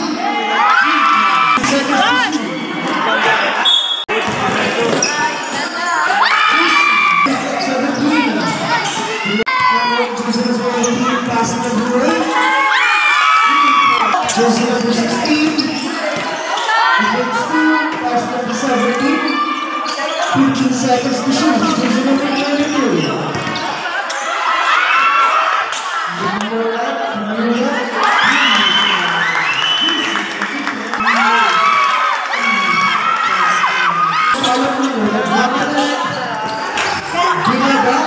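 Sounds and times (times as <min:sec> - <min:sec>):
young voices shouting: 0:12.1 - 0:14.2.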